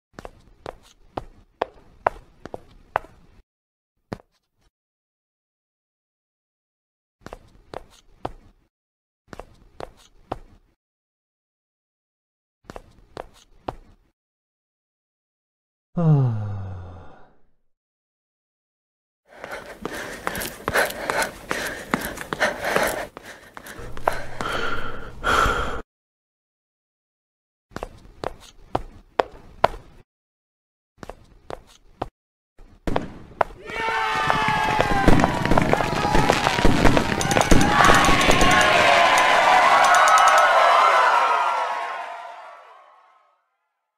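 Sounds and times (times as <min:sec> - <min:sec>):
cartoon footsteps: 0:00.2 - 0:03.4, 0:07.2 - 0:08.6, 0:09.3 - 0:10.7, 0:12.7 - 0:14.1, 0:19.3 - 0:24.7, 0:27.7 - 0:30.0, 0:31.0 - 0:35.8
cartoon character gasping: 0:16.0 - 0:17.4.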